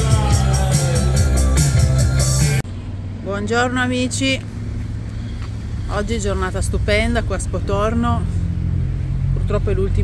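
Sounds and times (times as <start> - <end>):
road traffic rumble: 0.0 - 10.0
woman's voice: 3.2 - 4.5, 5.8 - 8.4, 9.3 - 10.0.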